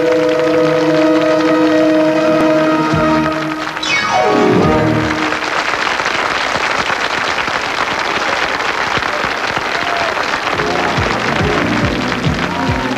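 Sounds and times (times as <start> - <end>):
band playing: 0.0 - 5.7, 10.6 - 12.9
audience applauding: 0.0 - 12.9.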